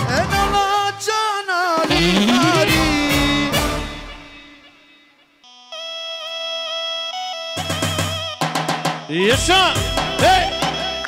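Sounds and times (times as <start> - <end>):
drums: 0.0 - 4.5, 7.6 - 11.0
band music: 0.0 - 11.0.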